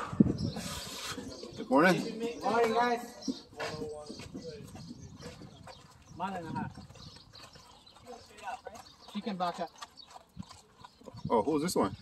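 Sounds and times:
hooves thudding on dirt: 0.0s - 12.0s.

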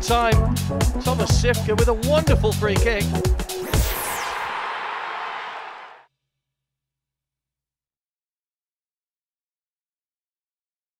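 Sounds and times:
whoosh with rushing hiss: 3.6s - 6.0s.

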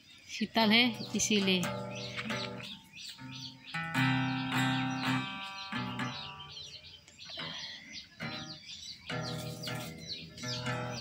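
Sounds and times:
small birds chirping: 0.0s - 11.0s
acoustic guitar chords strummed: 0.9s - 6.9s, 8.2s - 11.0s.

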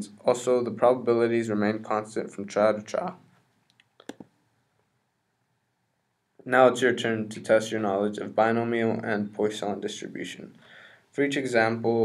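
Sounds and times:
person speaking: 0.0s - 4.3s, 6.4s - 12.0s.

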